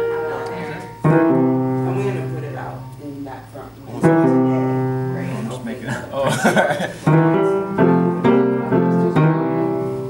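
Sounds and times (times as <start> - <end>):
piano chords ringing: 0.0 - 10.0.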